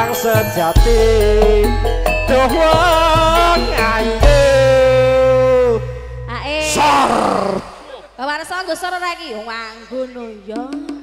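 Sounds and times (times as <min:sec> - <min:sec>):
band music: 0:00.0 - 0:08.2
person shouting: 0:06.5 - 0:08.1.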